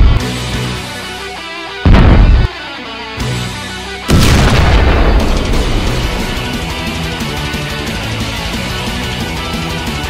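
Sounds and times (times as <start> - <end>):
heavy rock music: 0.0 - 10.0
loud boom: 4.1 - 7.0.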